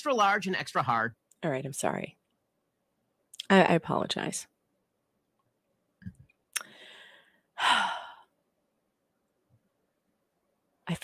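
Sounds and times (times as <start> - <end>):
woman breathing in: 6.6 - 8.3
woman sighing: 6.6 - 8.3.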